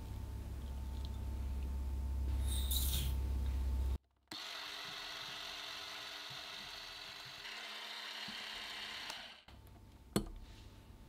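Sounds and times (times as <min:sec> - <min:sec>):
electric hand mixer whipping cream: 0:04.3 - 0:09.5.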